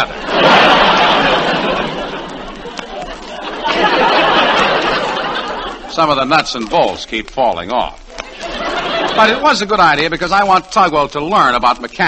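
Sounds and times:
audience laughing: 0:00.0 - 0:10.4.

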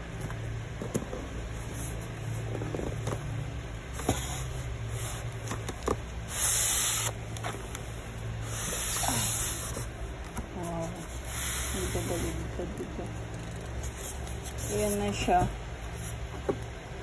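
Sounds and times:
plastic and cardboard rustling: 0:00.0 - 0:16.7.

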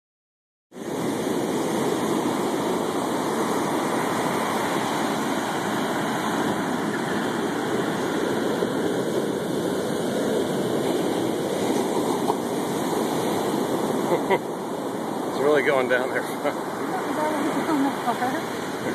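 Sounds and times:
ocean surf breaking: 0:00.8 - 0:18.9.

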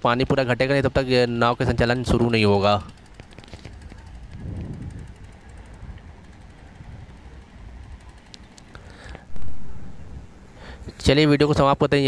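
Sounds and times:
wind buffeting microphone: 0:02.8 - 0:08.6, 0:09.2 - 0:11.1.

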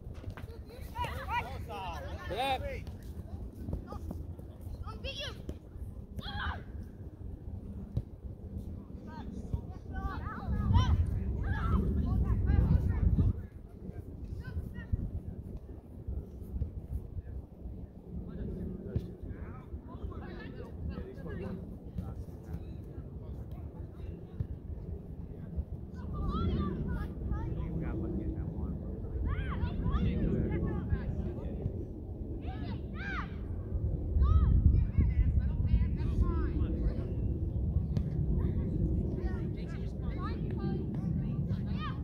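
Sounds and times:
wind on microphone: 0:06.7 - 0:19.8, 0:24.0 - 0:42.0.

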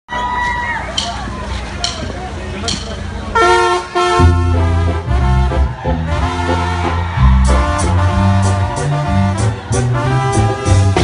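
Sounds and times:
live crowd noise: 0:00.1 - 0:11.0
brass section held chord: 0:03.4 - 0:11.0.

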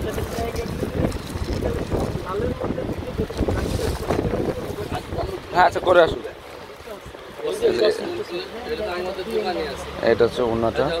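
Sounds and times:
microphone handling rumble: 0:00.0 - 0:05.5
fabric and plastic bags rustling: 0:00.0 - 0:05.6.

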